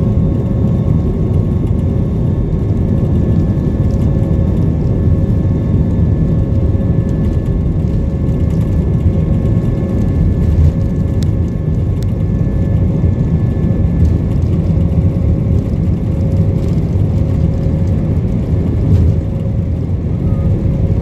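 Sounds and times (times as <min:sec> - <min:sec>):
jet engines rumbling in cabin: 0:00.0 - 0:21.0
thin constant engine whine: 0:00.0 - 0:21.0.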